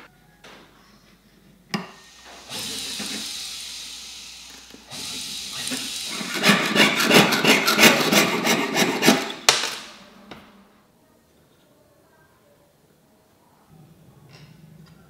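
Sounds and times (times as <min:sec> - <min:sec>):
rapid rasping strokes on metal: 0:05.6 - 0:09.4
hand tool scraping metal: 0:05.7 - 0:09.5.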